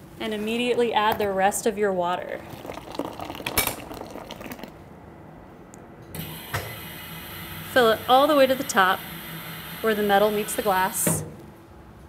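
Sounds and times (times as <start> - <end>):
water pouring into glass: 2.3 - 4.8.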